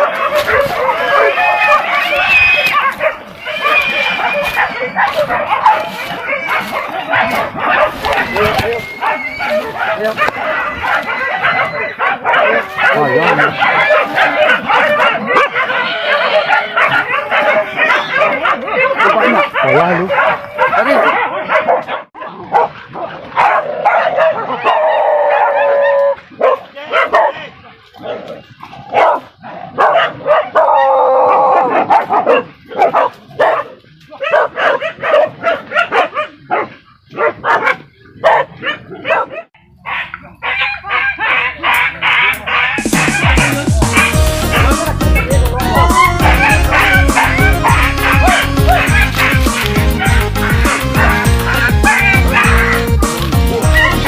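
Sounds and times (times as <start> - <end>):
dogs barking and yelping: 0.0 - 54.0.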